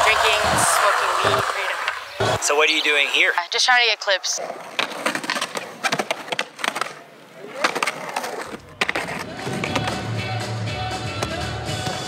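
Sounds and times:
skateboard clacks: 0.0 - 2.4, 4.6 - 10.1
skateboard sliding on ledge: 0.0 - 3.3, 4.5 - 12.0
skateboard wheels rolling: 0.0 - 12.0
music with heavy bass: 9.4 - 12.0.

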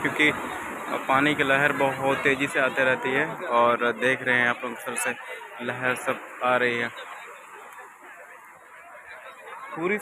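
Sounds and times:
waves washing over rocky shore: 0.0 - 10.0.

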